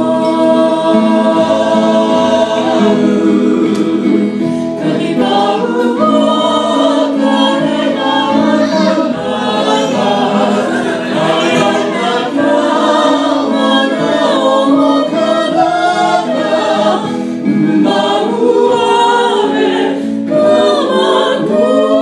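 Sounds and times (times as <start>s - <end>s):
acoustic guitars playing: 0.0s - 22.0s
women singing in harmony: 0.0s - 22.0s.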